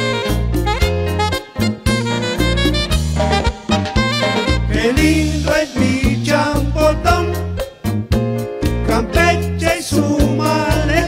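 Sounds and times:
saxophone melody: 0:00.0 - 0:05.0
drum kit: 0:00.0 - 0:11.0
electric bass: 0:00.0 - 0:11.0
keyboard: 0:00.0 - 0:11.0.

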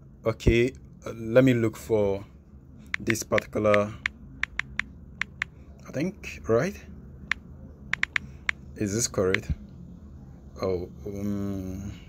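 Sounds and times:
phone keyboard clicks: 0:02.9 - 0:05.5, 0:07.3 - 0:08.6.

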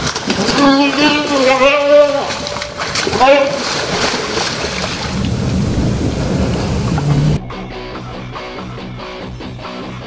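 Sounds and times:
low rumble: 0:04.8 - 0:07.4
loud steady noisy rush: 0:05.0 - 0:07.4.

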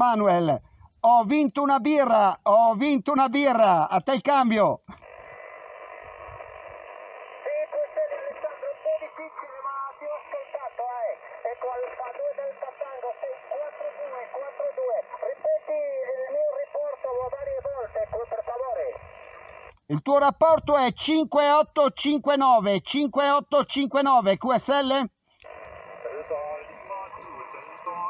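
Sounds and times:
radio band hiss: 0:03.1 - 0:22.4, 0:23.1 - 0:28.0
thin radio speech: 0:04.6 - 0:20.8, 0:23.8 - 0:28.0.

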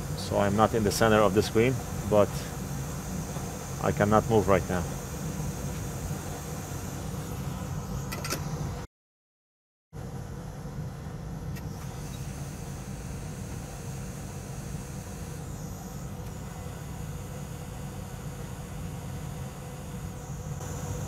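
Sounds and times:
hot air blower rushing: 0:00.0 - 0:08.8, 0:11.6 - 0:21.0
faint high whine: 0:00.0 - 0:08.9, 0:10.0 - 0:21.0.

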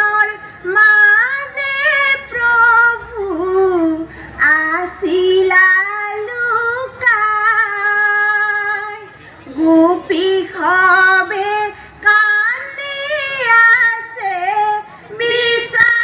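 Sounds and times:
women singing devotional chant: 0:00.0 - 0:16.0.

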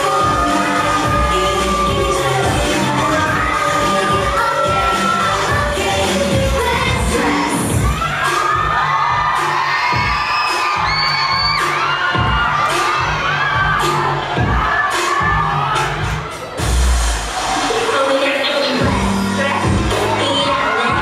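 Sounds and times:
audience screaming and cheering: 0:00.0 - 0:21.0
dance track over loudspeakers: 0:00.0 - 0:21.0.

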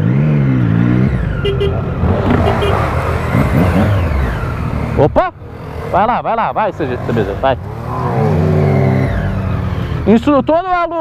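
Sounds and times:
motorcycle engine revving: 0:00.0 - 0:10.6.

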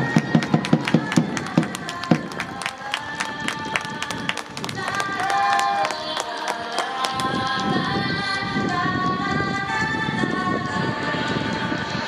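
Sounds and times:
music with long held notes: 0:00.0 - 0:12.0
hand claps: 0:00.2 - 0:07.7.

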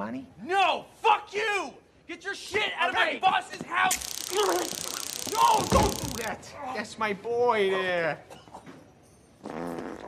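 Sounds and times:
short low fart: 0:09.4 - 0:10.0.

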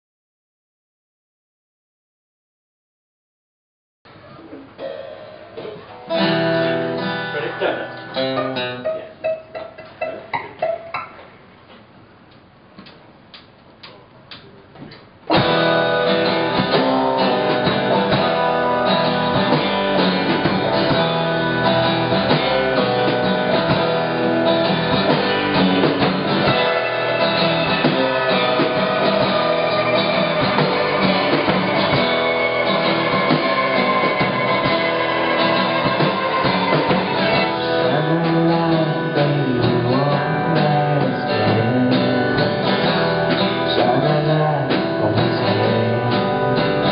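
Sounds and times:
guitar notes ringing: 0:04.7 - 0:11.2, 0:15.3 - 0:40.1
band playing loudly: 0:04.8 - 0:11.3, 0:15.3 - 0:46.9
drum kit steady beat: 0:15.3 - 0:46.9
electric bass: 0:15.3 - 0:46.9
bowed violin: 0:28.4 - 0:37.6.

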